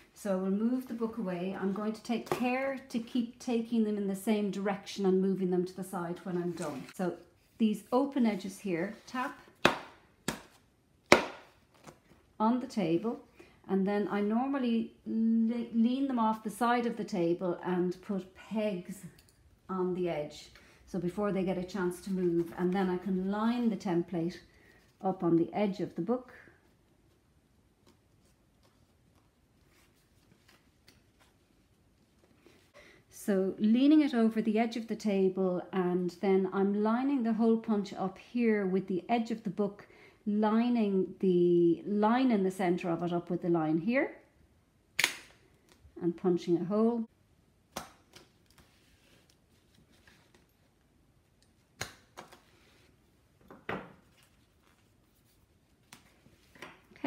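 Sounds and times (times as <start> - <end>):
paper rustling: 48.1 - 50.8.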